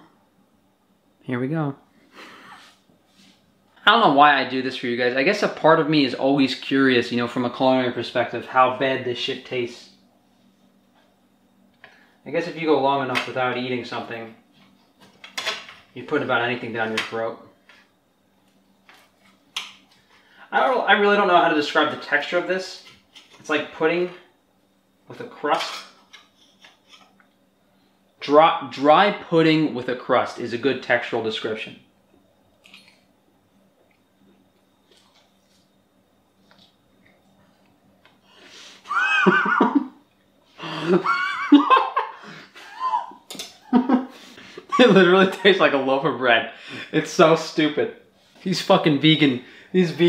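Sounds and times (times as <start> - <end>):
faint low hum: 0.0 - 50.0
eating at a plate: 33.8 - 35.7
man laughing with mouth full: 38.8 - 40.0, 40.6 - 45.6.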